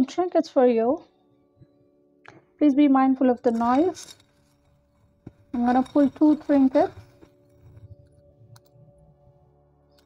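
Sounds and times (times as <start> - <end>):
metal charms clinking in glass dish: 5.4 - 7.2.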